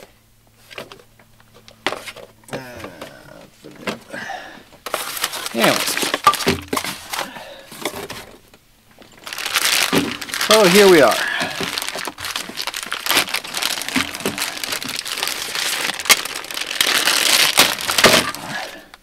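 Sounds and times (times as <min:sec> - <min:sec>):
plastic packaging crinkling: 0:04.8 - 0:19.0.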